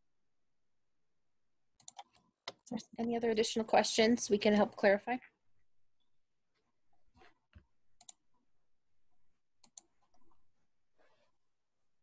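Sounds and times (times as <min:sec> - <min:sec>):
computer mouse clicking: 0:01.8 - 0:02.6, 0:08.0 - 0:08.2, 0:09.6 - 0:10.4.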